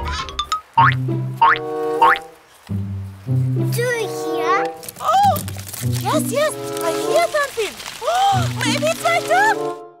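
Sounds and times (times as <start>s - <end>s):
playful children's music: 0.0s - 10.0s.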